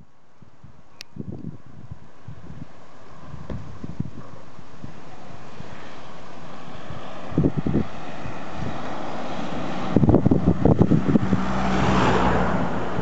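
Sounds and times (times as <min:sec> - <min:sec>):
wind buffeting microphone: 0:00.0 - 0:13.0
car passing on road: 0:01.6 - 0:13.0.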